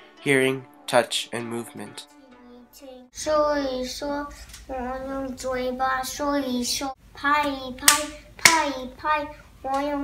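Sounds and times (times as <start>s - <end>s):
boy's voice: 1.4s - 10.0s
sharp hand claps: 7.8s - 8.7s.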